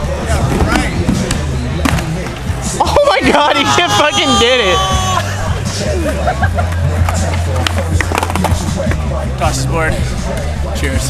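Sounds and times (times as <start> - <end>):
background music with bass: 0.0 - 11.0
laughter: 5.9 - 6.9
sharp skateboard clacks: 7.0 - 9.0.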